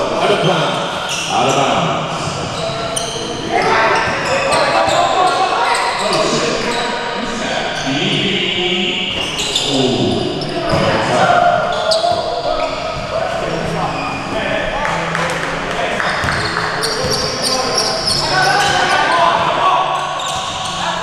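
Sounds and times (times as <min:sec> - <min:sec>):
players shouting: 0:15.9 - 0:21.0.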